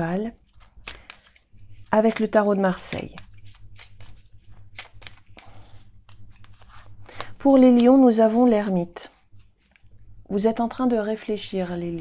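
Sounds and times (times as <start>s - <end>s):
cards being shuffled by hand: 0.0s - 10.0s.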